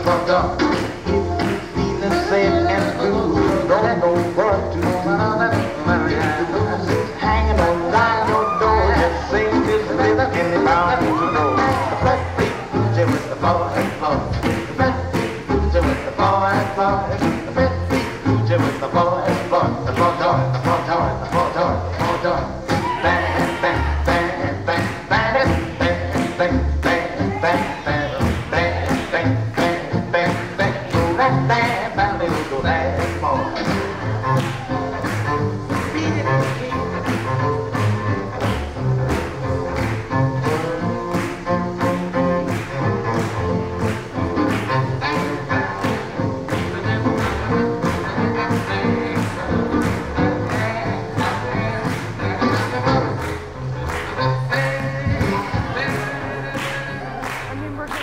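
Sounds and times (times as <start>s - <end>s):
swing jazz band music: 0.0s - 58.0s.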